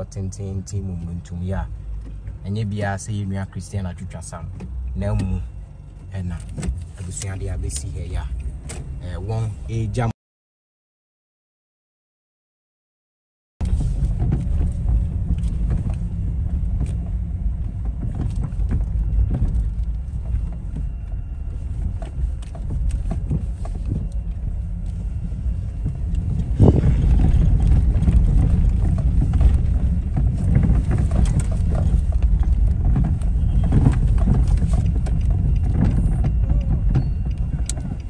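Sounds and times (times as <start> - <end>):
rumble of slow-moving cars: 0.0 - 10.1, 13.6 - 38.0.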